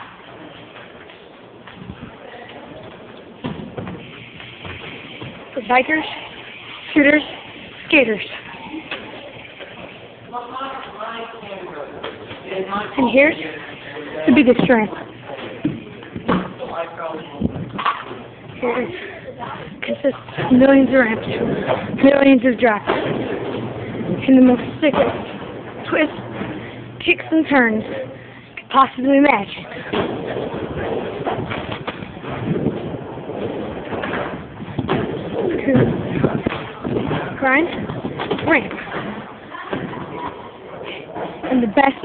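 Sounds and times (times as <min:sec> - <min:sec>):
echoing indoor background noise: 0:00.0 - 0:42.0.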